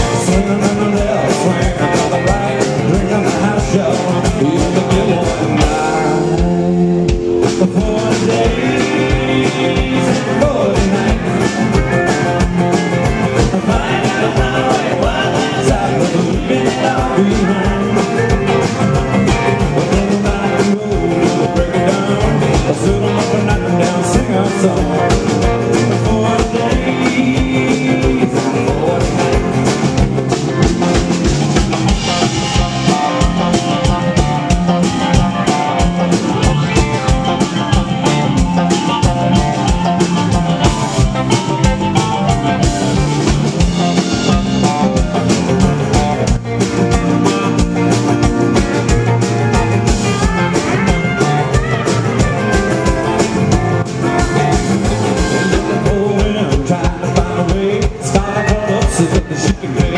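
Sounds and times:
drum kit steady beat: 0:00.0 - 0:59.9
electric and acoustic guitars: 0:00.0 - 0:59.9.

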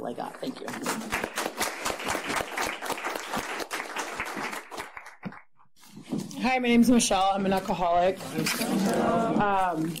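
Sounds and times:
people applauding: 0:00.2 - 0:05.5.

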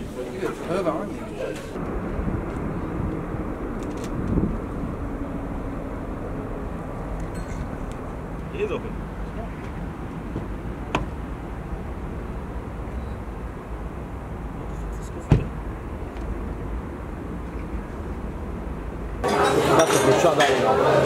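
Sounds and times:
traffic rumble: 0:00.0 - 0:21.0
sharp knocks: 0:09.7 - 0:11.2.

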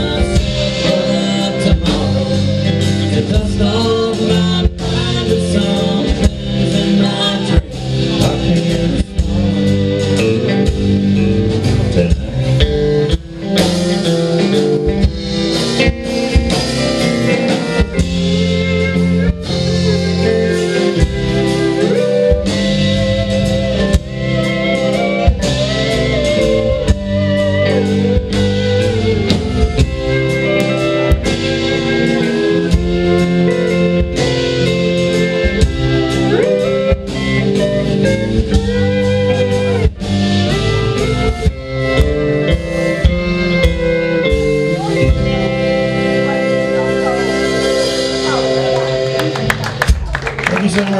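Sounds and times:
drum beat: 0:00.0 - 0:50.9
electric guitar: 0:00.0 - 0:50.9
upright bass: 0:00.0 - 0:50.9.

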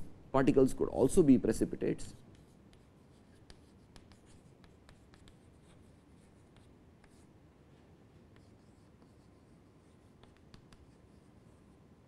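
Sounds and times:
chalk writing on chalkboard: 0:02.1 - 0:11.7.

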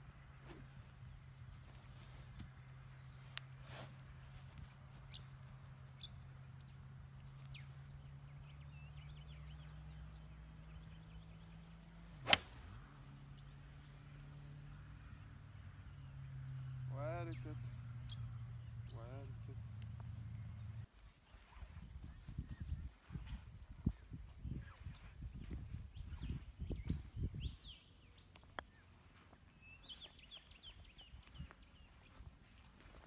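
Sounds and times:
golf club striking ball: 0:12.2 - 0:12.9.

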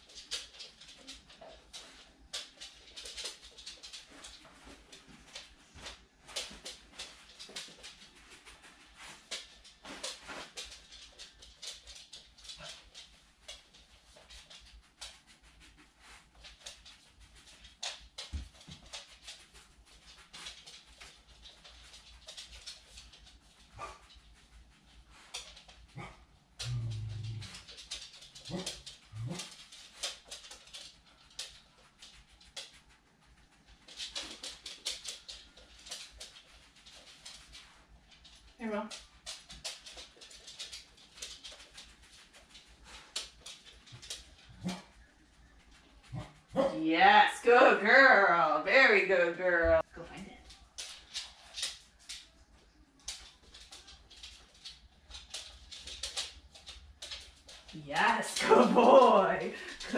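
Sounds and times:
dog claws clicking on wood floor: 0:00.0 - 0:46.7, 0:49.9 - 0:59.9
rustling: 0:00.0 - 0:59.9
dog sniffing: 0:39.3 - 0:46.8.

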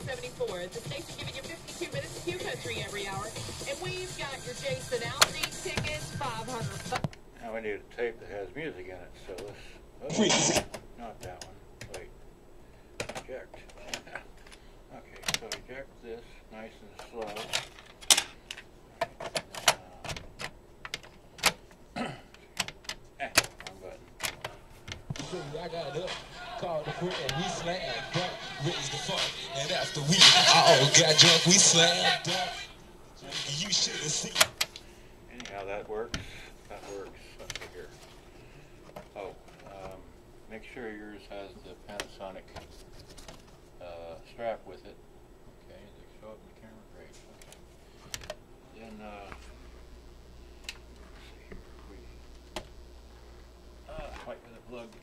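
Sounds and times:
plastic clicks of boombox handling: 0:17.0 - 0:21.8, 0:22.6 - 0:25.3.

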